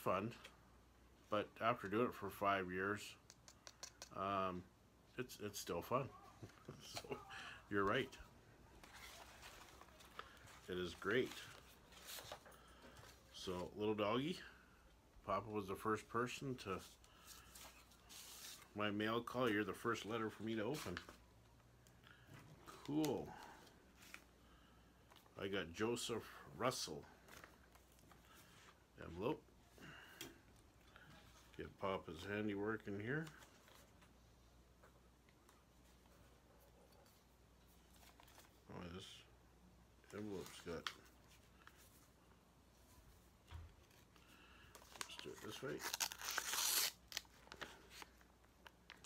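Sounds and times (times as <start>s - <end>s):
man speaking: 1.3s - 3.2s, 4.1s - 8.3s, 10.6s - 11.6s, 13.3s - 14.5s, 15.2s - 17.0s, 18.8s - 21.1s, 22.7s - 23.4s, 25.4s - 27.1s, 29.0s - 29.5s, 31.6s - 33.4s, 38.7s - 39.3s, 40.1s - 41.0s, 45.1s - 46.0s
paper rustling: 8.7s - 13.2s.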